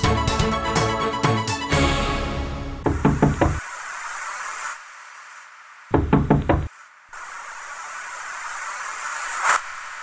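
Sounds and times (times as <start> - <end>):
knocking on wooden door: 2.8 - 3.6, 5.9 - 6.7.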